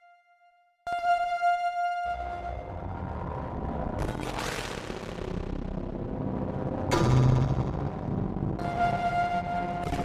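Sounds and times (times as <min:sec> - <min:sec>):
low rumble: 0:02.6 - 0:10.0.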